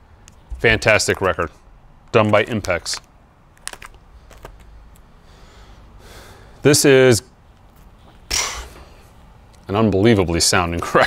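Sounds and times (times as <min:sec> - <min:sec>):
record jacket clicks and taps: 0:00.2 - 0:05.1.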